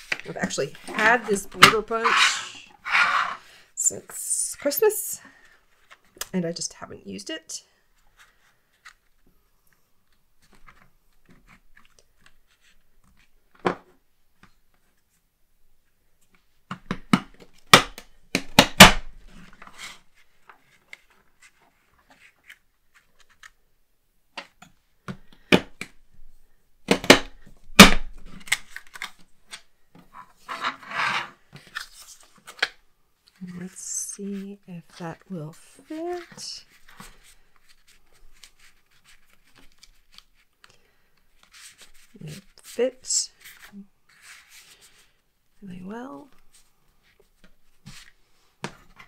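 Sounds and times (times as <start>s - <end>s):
paper rustling: 35.8s - 40.6s, 41.3s - 45.2s.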